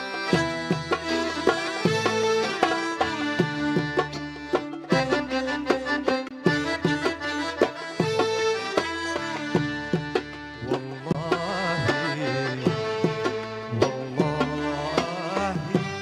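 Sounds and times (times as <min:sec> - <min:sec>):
accordion: 0:00.0 - 0:16.0
bongos rhythm: 0:00.0 - 0:16.0
violins: 0:00.0 - 0:16.0.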